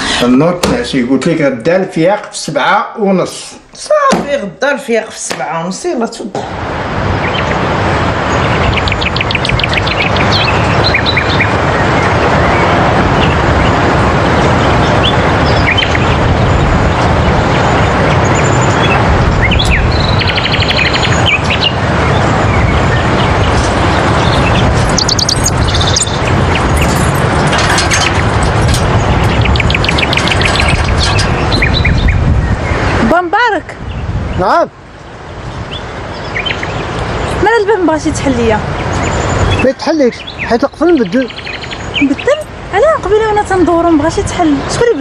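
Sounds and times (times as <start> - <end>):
rush of wind: 0.0 - 45.0
sea surf: 3.3 - 31.6
small birds chirping: 7.1 - 45.0.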